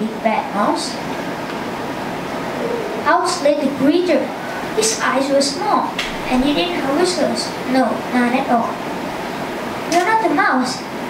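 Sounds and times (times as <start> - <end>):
room noise hiss: 0.0 - 11.0.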